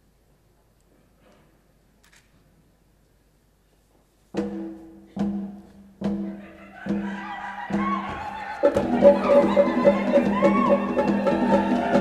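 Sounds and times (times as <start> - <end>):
orchestra chords with timpani: 8.6 - 12.0.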